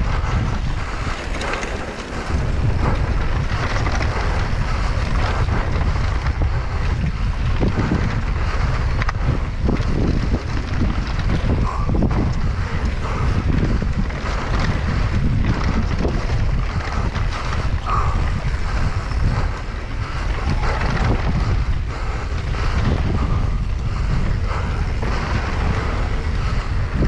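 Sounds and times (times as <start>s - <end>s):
bike knocks and rattles: 0.0s - 27.0s
wind buffeting microphone: 0.0s - 27.0s.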